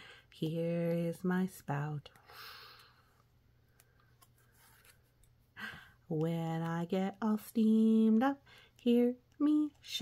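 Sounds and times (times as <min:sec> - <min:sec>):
cardboard page turning: 0:03.8 - 0:05.3.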